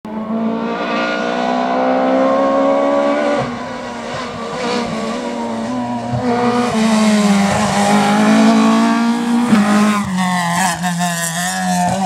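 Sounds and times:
rally car engine revving: 0.1s - 12.0s.

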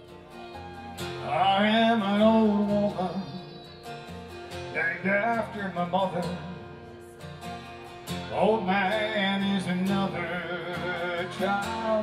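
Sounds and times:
acoustic guitar: 0.0s - 12.0s
man singing ballad: 1.2s - 3.7s, 4.7s - 6.9s, 8.3s - 12.0s.

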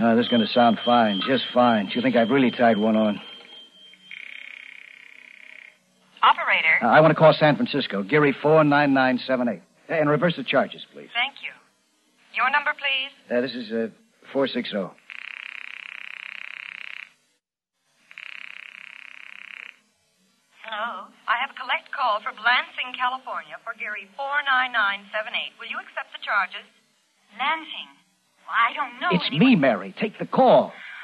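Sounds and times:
buzzing telephone ring: 0.0s - 6.1s, 15.0s - 17.2s, 18.0s - 20.0s.

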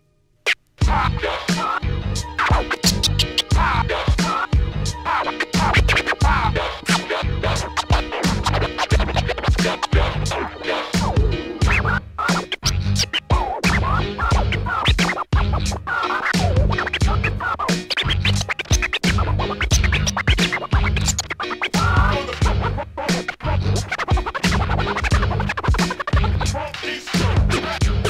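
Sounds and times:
hip hop beat with heavy bass: 0.5s - 28.0s
vinyl record scratching: 0.5s - 28.0s.

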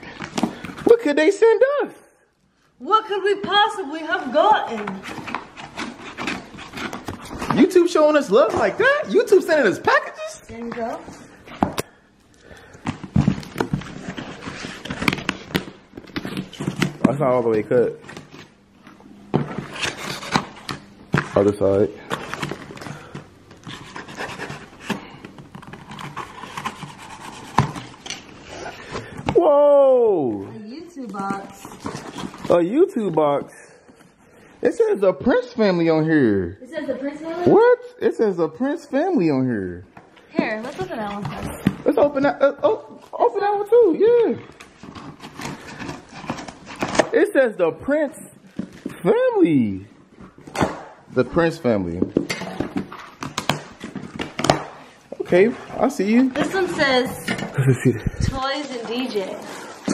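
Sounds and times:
scissors cutting cardboard: 23.6s - 28.2s.

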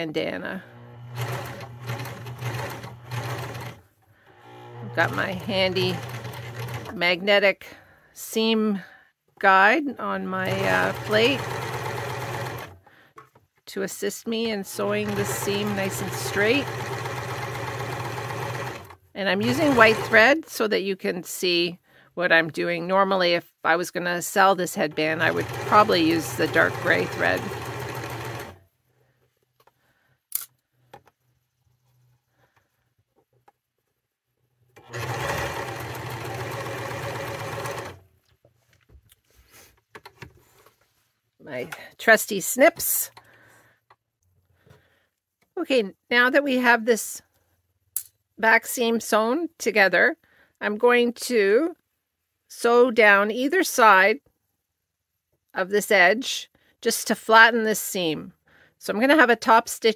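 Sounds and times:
electric sewing machine running: 0.5s - 7.0s, 10.4s - 12.8s, 14.7s - 20.3s, 25.0s - 28.6s, 34.8s - 38.0s.

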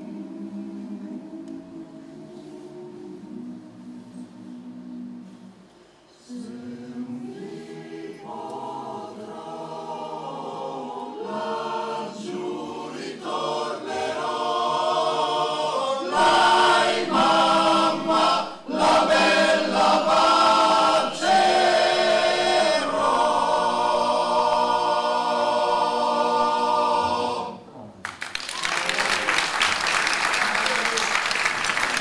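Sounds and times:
male choir singing: 0.0s - 5.4s, 6.2s - 27.7s.

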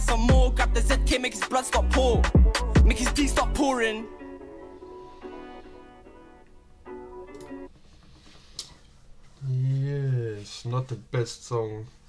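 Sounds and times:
soft instrumental music: 0.0s - 9.9s.

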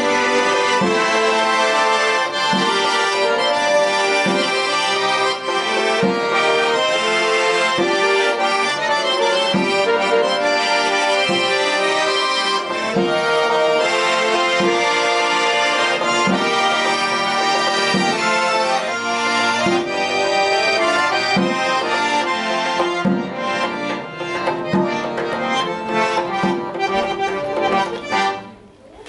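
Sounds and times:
piano accordion playing chords: 0.0s - 28.7s.

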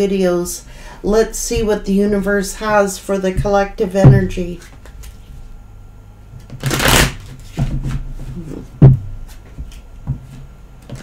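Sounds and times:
cards being shuffled: 6.4s - 7.7s.

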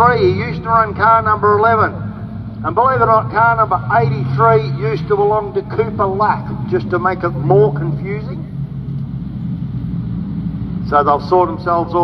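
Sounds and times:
engine hum: 0.0s - 12.0s
race car engines rumbling: 0.0s - 12.0s.

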